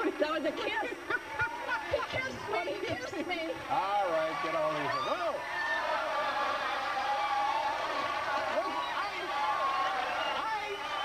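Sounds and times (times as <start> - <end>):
studio audience applauding and cheering: 0.0 - 11.0.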